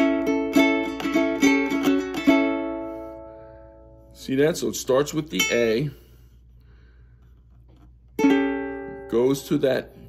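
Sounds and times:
ukulele chord strummed: 0:00.0 - 0:04.1, 0:08.2 - 0:09.8.

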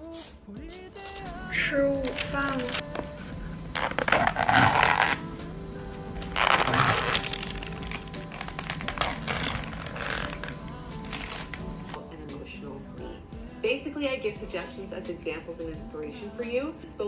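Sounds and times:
background music: 0:00.0 - 0:17.0
plastic bag rustling: 0:06.0 - 0:12.0.

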